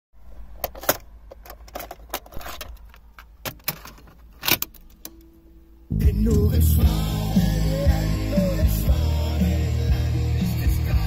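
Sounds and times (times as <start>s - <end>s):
faint steady hum: 0.2s - 11.0s
cassette clicking and rattling: 0.6s - 5.3s
low steady rumble: 5.3s - 11.0s.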